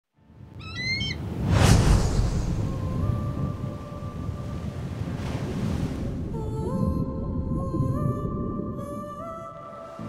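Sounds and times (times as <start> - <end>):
short bird call: 0.6 - 1.2
loud rushing whoosh: 1.3 - 4.2
low rumble: 1.4 - 9.3.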